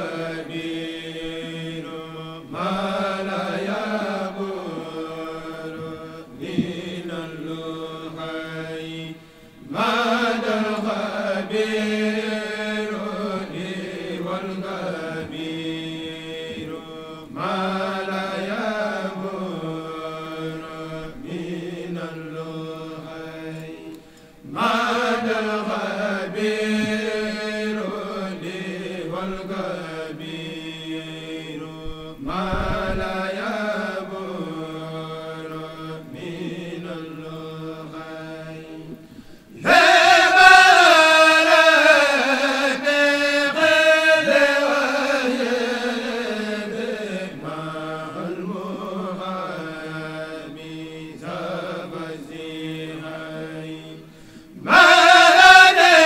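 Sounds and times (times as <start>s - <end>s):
men chanting in unison: 0.0s - 56.0s.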